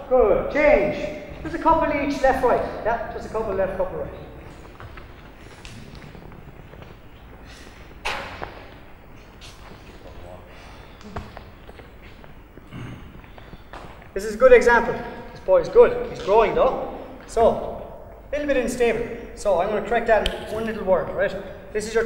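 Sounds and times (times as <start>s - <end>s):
footsteps in hall: 0.0s - 22.0s.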